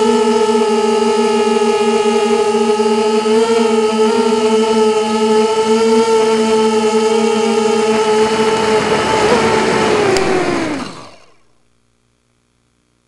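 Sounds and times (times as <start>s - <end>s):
quadcopter motors whining: 0.0s - 11.6s.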